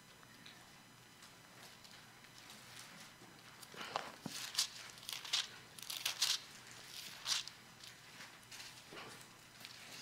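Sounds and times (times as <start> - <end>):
pages being leafed through: 3.7 - 8.9.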